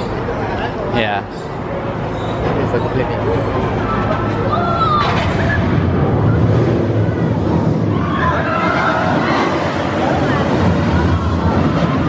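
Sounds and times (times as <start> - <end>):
roller coaster train rumbling: 0.0 - 12.0.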